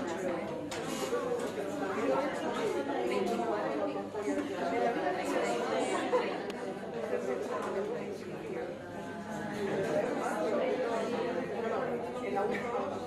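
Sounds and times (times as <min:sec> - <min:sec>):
students chattering: 0:00.0 - 0:13.0.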